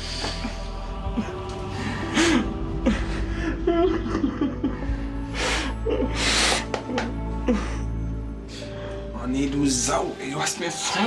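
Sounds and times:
background music: 0.0s - 11.0s
man sobbing: 0.2s - 8.2s.

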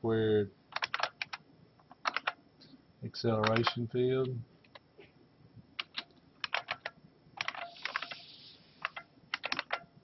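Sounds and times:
typing on computer keyboard: 0.7s - 2.4s, 3.4s - 3.8s, 5.8s - 9.9s.

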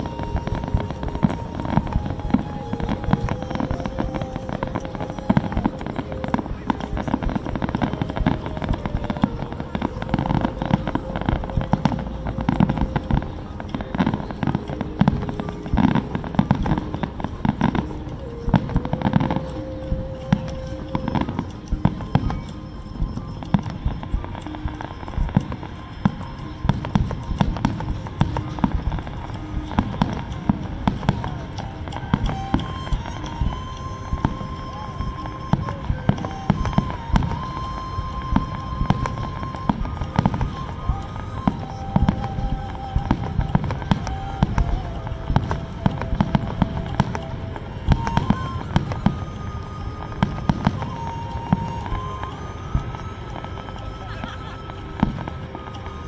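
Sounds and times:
fireworks bursting: 0.0s - 56.0s
music playing: 0.0s - 56.0s.

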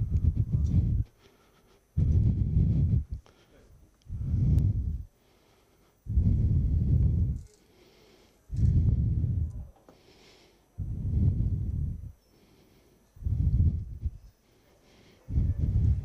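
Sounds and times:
breath blown into microphone: 6.1s - 12.1s, 13.2s - 14.2s.

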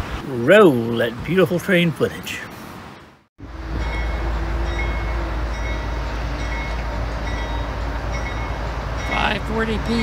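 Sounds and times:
freight train rumbling: 3.4s - 10.0s.

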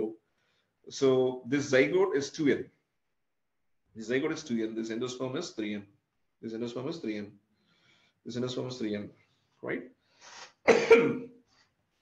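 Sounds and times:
man coughing: 10.7s - 11.3s.

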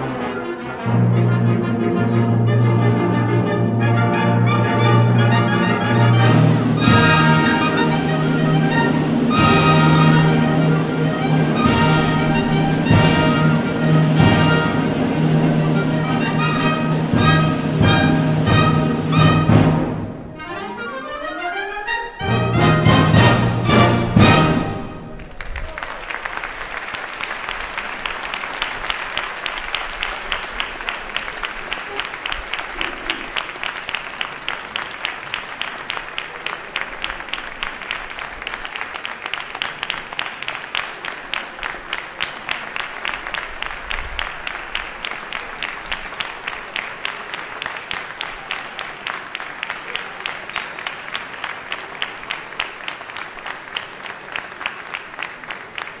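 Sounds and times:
audience applauding: 3.9s - 19.6s, 22.4s - 56.0s.

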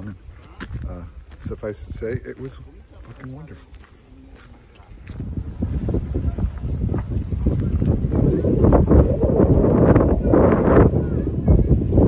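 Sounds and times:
wind buffeting microphone: 0.0s - 3.5s, 4.9s - 12.0s.

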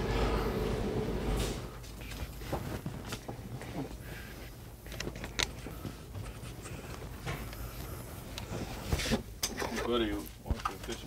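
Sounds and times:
steady low hum: 0.0s - 9.4s.

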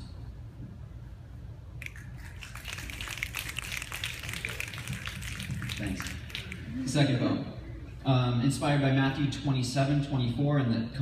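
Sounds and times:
audience snapping fingers: 1.8s - 6.9s.

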